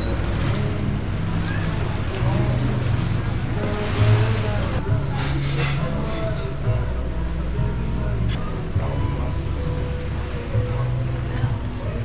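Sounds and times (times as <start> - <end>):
low steady hum: 0.0 - 12.0
people's voices: 0.0 - 12.0.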